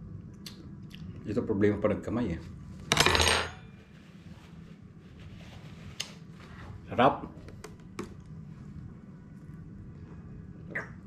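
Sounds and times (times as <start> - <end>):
tableware clicks and clinks: 2.9 - 3.7
paper towel rustle: 3.8 - 7.1.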